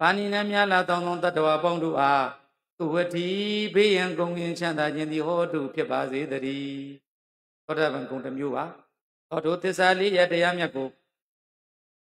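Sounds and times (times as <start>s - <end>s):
monk chanting: 0.0s - 7.0s.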